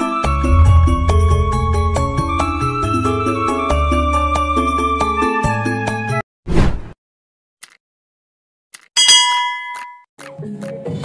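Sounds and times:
music with repeating low notes: 0.5 - 3.5
bright bell-like ding: 9.0 - 10.0.

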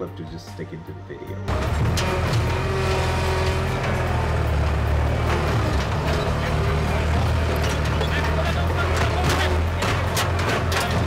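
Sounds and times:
loader engine running: 1.5 - 11.0
metal clanks and rattles: 1.5 - 11.0.

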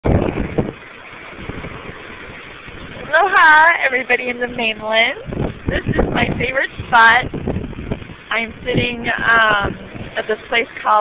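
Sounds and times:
low rumble: 0.0 - 11.0
waves breaking against rocks: 0.0 - 11.0.

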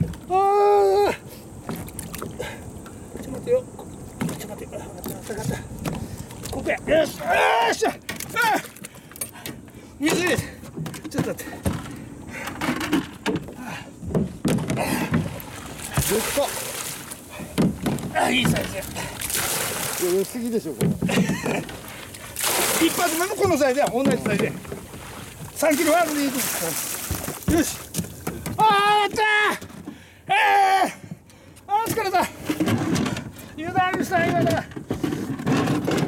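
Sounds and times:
water slopping against boat hull: 0.0 - 0.5, 1.5 - 30.1
thumps against cooler: 10.0 - 16.5, 17.3 - 18.9, 20.6 - 21.8, 23.2 - 24.9, 27.0 - 29.9
water rushing into cooler: 14.6 - 28.7
small knocks and handling noises: 23.4 - 25.0, 27.1 - 30.0.

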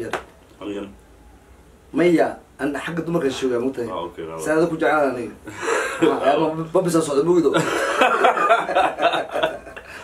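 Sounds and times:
men talking: 0.0 - 1.0, 1.9 - 9.9
men laughing: 5.5 - 6.5, 7.5 - 10.0.

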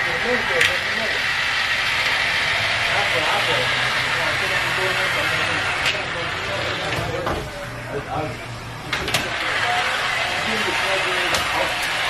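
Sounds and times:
overhead track train running: 0.0 - 6.8
background chatter: 0.0 - 12.0.

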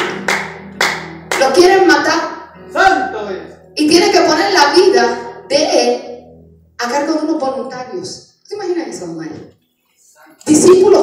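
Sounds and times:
sharp hand claps: 0.0 - 1.6.

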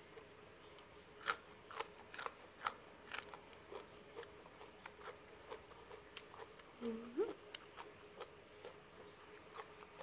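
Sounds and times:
crisp chewing crunches: 0.2 - 10.0.

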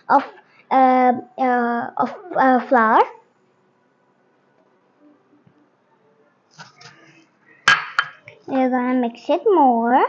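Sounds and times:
ceramic bowl clinking on glass bowl: 7.7 - 8.3.

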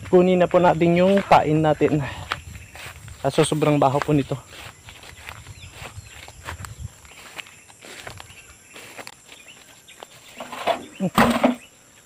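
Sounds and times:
footsteps through dry leaves: 0.0 - 10.4.

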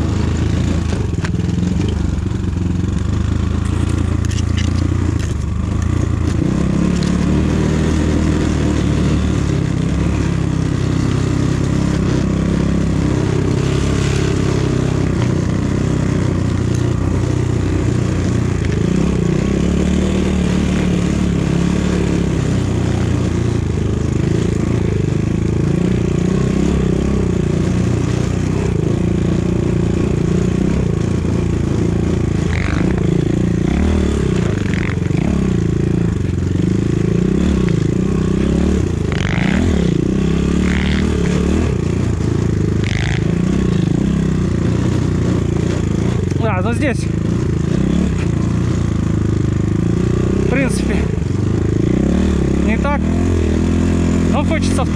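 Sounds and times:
motorcycle engine revving: 0.0 - 54.9.

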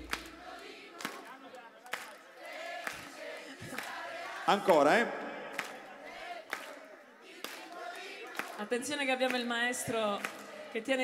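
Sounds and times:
audience clapping in time: 0.0 - 10.7
crowd singing and calling: 0.0 - 11.0.

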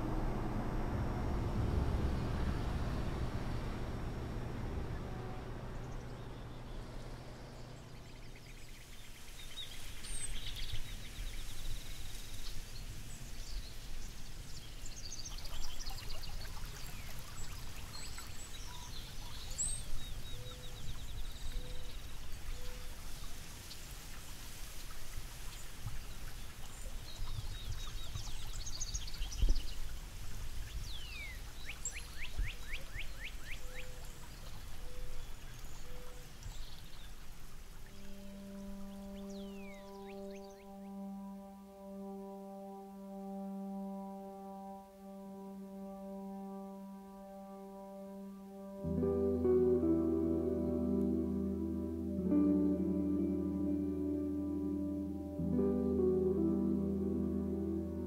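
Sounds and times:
low three-note bird call: 0.0 - 8.5, 37.9 - 58.0
low rushing rumble: 0.0 - 8.8
birds singing and calling: 26.7 - 30.0, 37.9 - 41.0.

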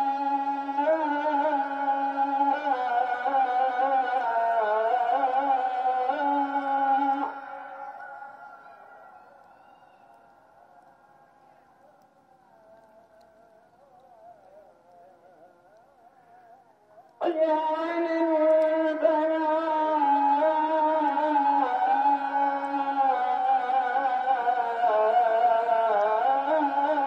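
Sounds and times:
call to prayer over loudspeakers: 0.0 - 27.0.

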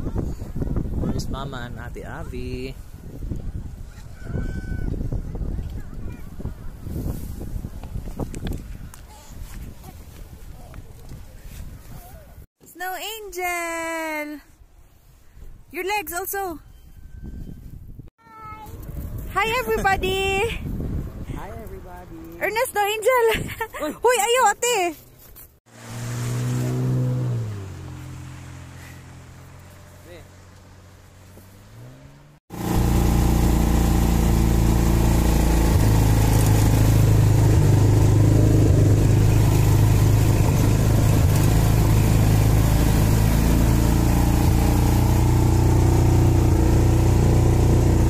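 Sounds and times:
low engine hum: 25.7 - 48.0.

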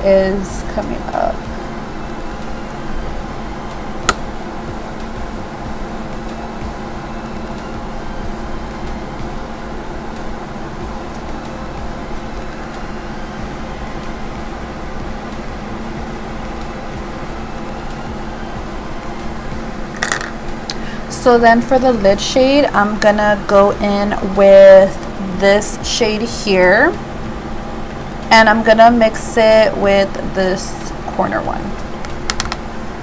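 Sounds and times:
background hum and hiss: 0.0 - 33.0.

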